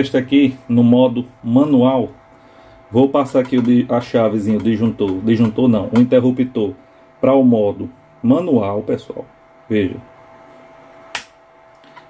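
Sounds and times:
faint steady hum: 0.0s - 12.0s
switch click: 11.1s - 12.0s.

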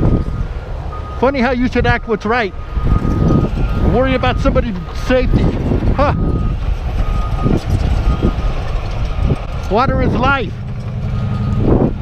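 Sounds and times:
reversing alarm beeping: 0.0s - 9.4s, 10.1s - 12.0s
heavy low rumble: 0.0s - 12.0s.

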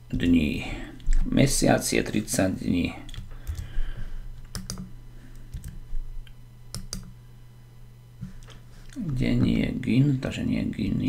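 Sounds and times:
computer keyboard key clicks: 4.5s - 4.9s, 6.7s - 7.1s.

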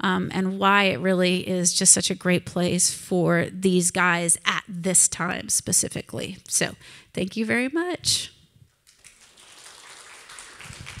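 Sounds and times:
audience applauding: 8.9s - 11.0s.

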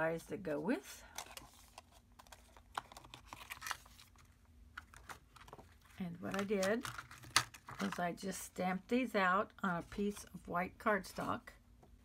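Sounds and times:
plastic sheets crinkling: 1.1s - 8.0s.

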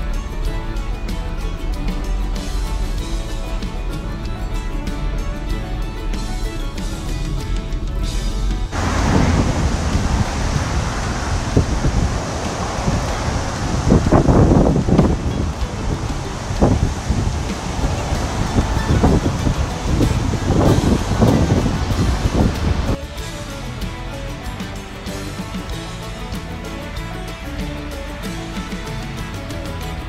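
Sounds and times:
wind buffeting microphone: 8.6s - 23.0s
surf breaking on a beach: 8.7s - 23.0s.

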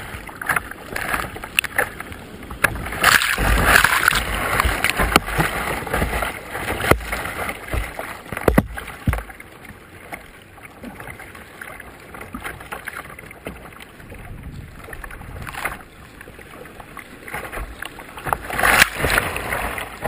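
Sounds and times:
river water rushing: 0.0s - 11.9s, 16.4s - 20.0s
loud water splash: 2.8s - 7.9s.

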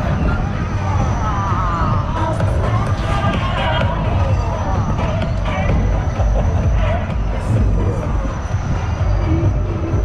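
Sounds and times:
fairground ride music: 0.0s - 10.0s
ride rumbling: 0.0s - 10.0s.

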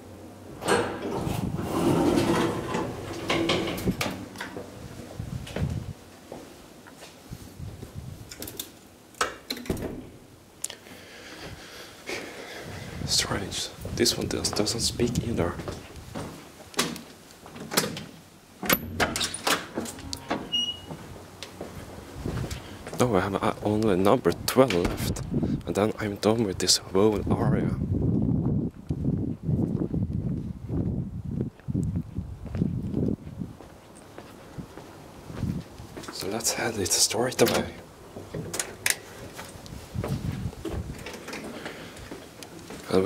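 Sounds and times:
elevator doors opening with motor hum: 0.3s - 5.6s, 17.7s - 21.6s
glass door opening and shutting: 0.5s - 4.7s, 8.3s - 10.3s, 16.8s - 21.1s, 24.6s - 25.3s, 37.4s - 39.1s, 40.7s - 41.6s
footsteps: 1.2s - 8.0s, 11.3s - 16.5s, 19.6s - 23.2s, 39.1s - 43.0s
door clicks and knocks: 9.2s - 10.2s, 17.6s - 20.6s
door latch knocks and clunks: 24.7s - 25.3s.

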